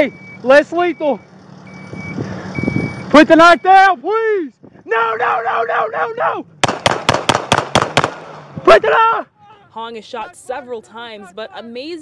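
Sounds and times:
high electronic beeps: 0:00.0 - 0:03.9
person shouting: 0:04.0 - 0:06.5, 0:08.6 - 0:09.8.

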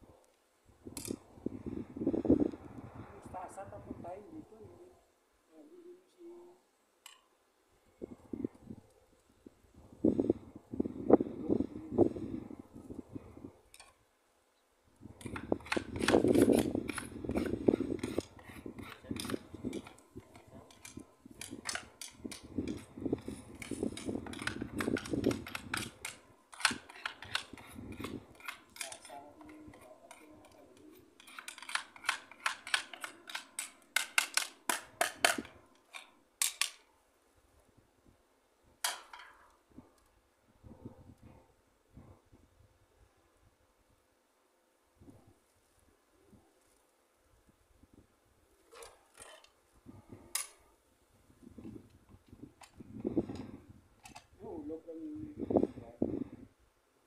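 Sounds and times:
people talking: 0:03.1 - 0:06.6, 0:28.8 - 0:31.0, 0:54.4 - 0:56.1
hand tools clicking on metal: 0:15.2 - 0:36.8.

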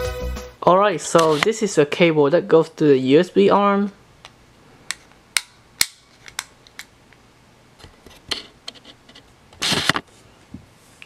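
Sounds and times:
circuit board scraping rustle: 0:08.0 - 0:10.1.

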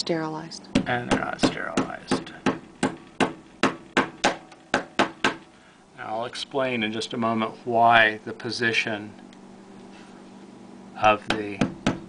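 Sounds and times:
hammer tapping a nail: 0:00.8 - 0:05.5, 0:11.2 - 0:12.0.

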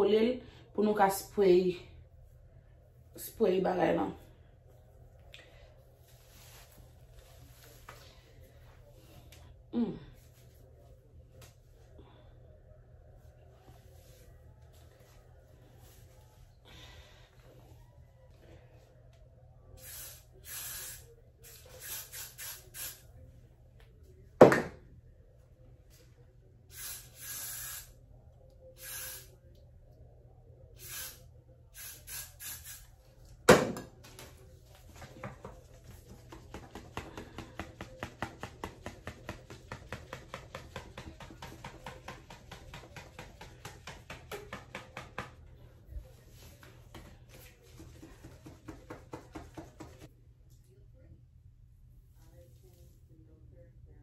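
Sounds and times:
hair spray can hissing: 0:19.8 - 0:23.0, 0:26.7 - 0:27.9, 0:28.8 - 0:29.3, 0:30.8 - 0:31.2, 0:31.8 - 0:32.9.

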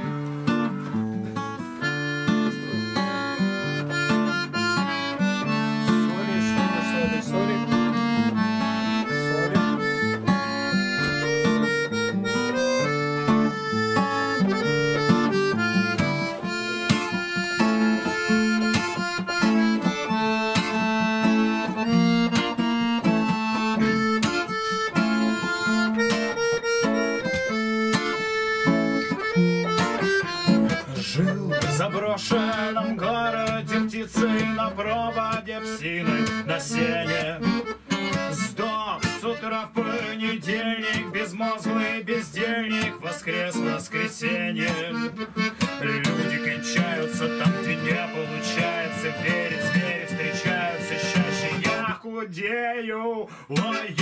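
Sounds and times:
acoustic guitar strumming: 0:00.0 - 0:52.7, 0:53.3 - 0:54.0
sustained melody notes: 0:00.7 - 0:40.0.

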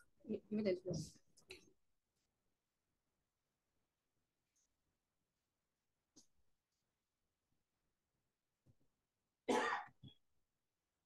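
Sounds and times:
person coughing: 0:09.5 - 0:10.0.

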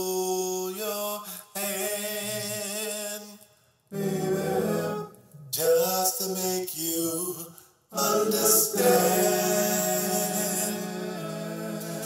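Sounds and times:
man singing lead vocal: 0:00.0 - 0:03.4, 0:04.5 - 0:12.0
male harmony vocals: 0:00.0 - 0:12.0.

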